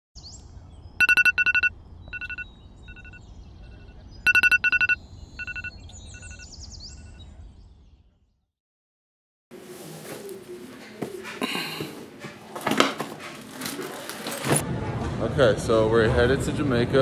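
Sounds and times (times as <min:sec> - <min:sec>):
electronic alarm beeping: 0:01.0 - 0:06.5.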